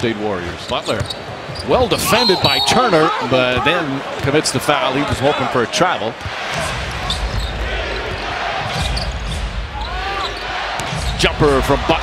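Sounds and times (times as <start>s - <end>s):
arena crowd murmur: 1.3s - 12.0s.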